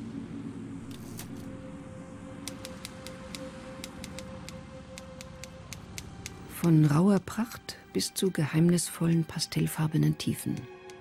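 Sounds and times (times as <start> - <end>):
low drone: 0.0 - 11.0.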